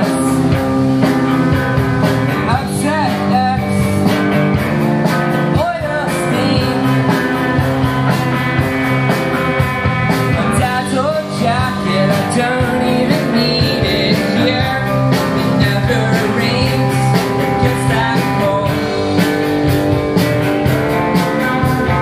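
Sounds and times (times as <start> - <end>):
drum kit: 0.0 - 22.0
electric guitars: 0.0 - 22.0.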